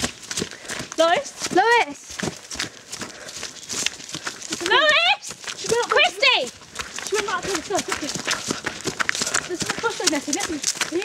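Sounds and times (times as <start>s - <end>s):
footsteps crunching on dirt path: 0.0s - 11.0s
girl calling out: 4.6s - 6.4s.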